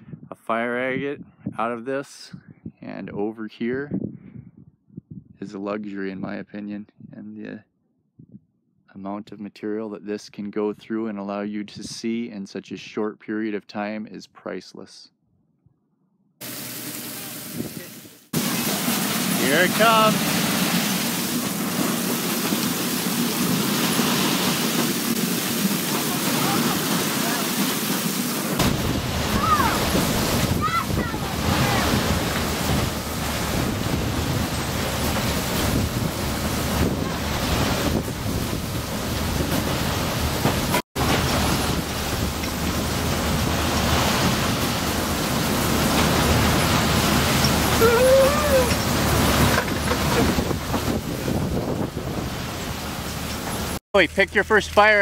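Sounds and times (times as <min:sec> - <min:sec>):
water spraying onto conveyor belt: 0:16.4 - 0:55.0.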